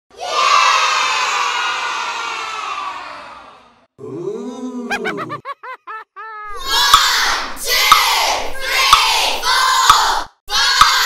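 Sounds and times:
children cheering and shouting: 0:00.1 - 0:03.7, 0:06.4 - 0:11.0.

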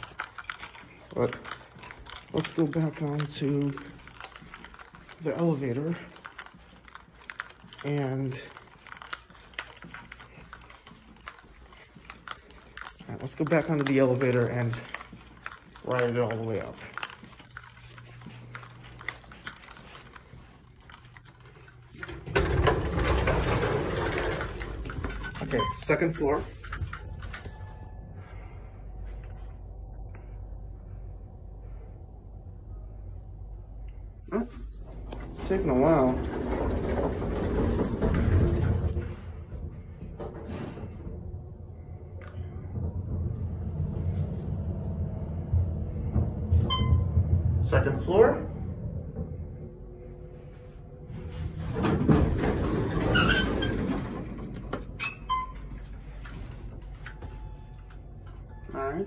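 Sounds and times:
elevator low hum with hiss: 0:26.6 - 0:59.0.

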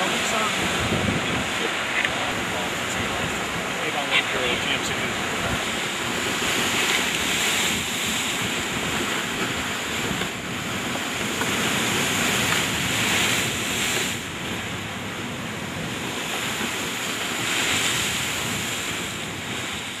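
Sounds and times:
waves washing against shore: 0:00.0 - 0:20.0
wind noise on microphone: 0:00.0 - 0:20.0.

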